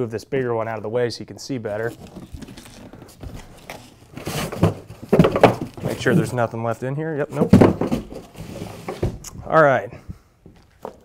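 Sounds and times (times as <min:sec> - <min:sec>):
cardboard rustling and scraping: 0:01.7 - 0:06.5, 0:07.3 - 0:09.2.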